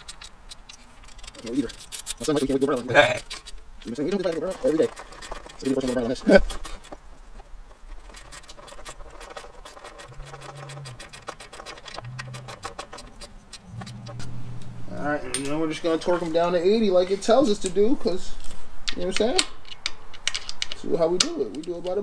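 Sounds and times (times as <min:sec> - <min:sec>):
person speaking: 0:01.2 - 0:06.8, 0:12.0 - 0:19.5.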